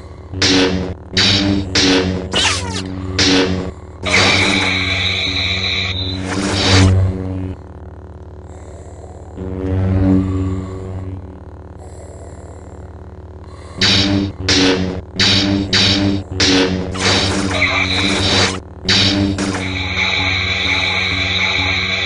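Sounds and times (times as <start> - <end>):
lightsaber electric hum: 0.0 - 22.0
lightsaber blade clashes: 0.4 - 4.8, 13.8 - 20.0.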